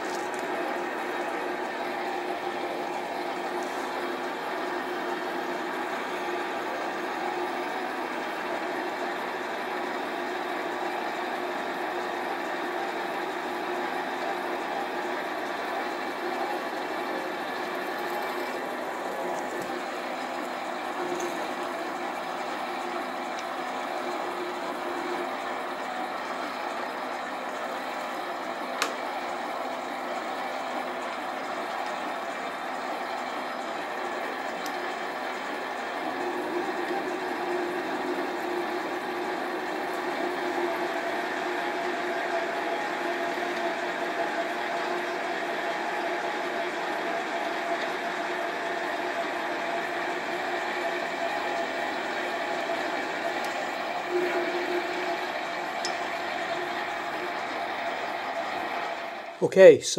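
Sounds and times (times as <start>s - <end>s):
metal lathe humming and whining: 0.0s - 59.4s.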